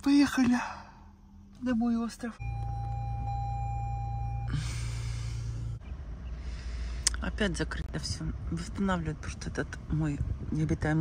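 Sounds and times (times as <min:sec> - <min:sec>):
vehicle cabin rumble: 0:00.0 - 0:11.0.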